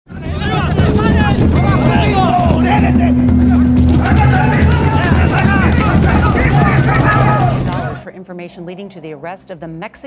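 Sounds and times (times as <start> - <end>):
voices talking and calling: 0.1 - 8.1
steady low rumble: 0.2 - 8.1
steady hum: 0.3 - 8.0.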